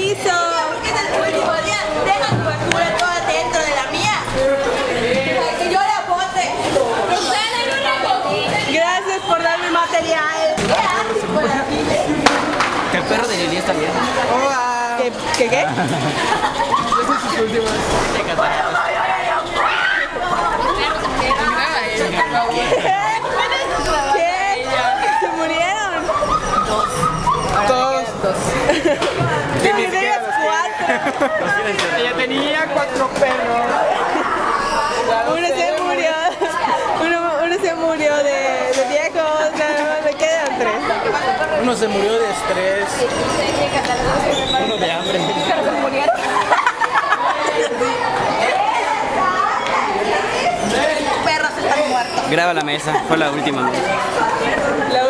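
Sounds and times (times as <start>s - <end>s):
young people chattering: 0.0s - 55.0s.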